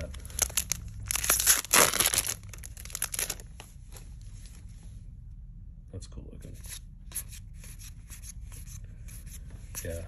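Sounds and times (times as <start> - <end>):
foil wrapper crinkling: 0.2 - 3.5
foil pack tearing open: 0.4 - 3.4.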